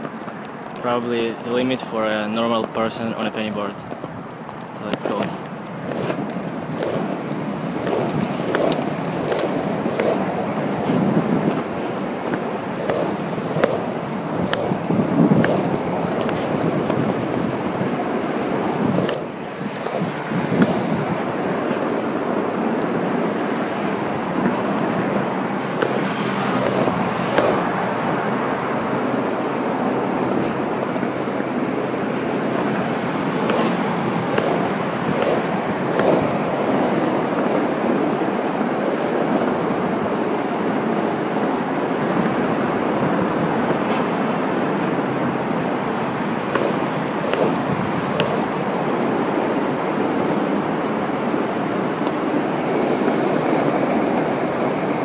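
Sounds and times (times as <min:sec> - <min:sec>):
skateboard wheels rolling on asphalt: 0:00.0 - 0:55.0
wind buffeting microphone: 0:00.0 - 0:55.0.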